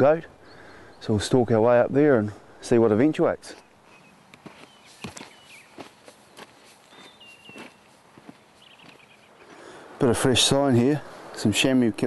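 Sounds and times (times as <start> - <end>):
footsteps crunching on gravel: 3.4 - 9.5.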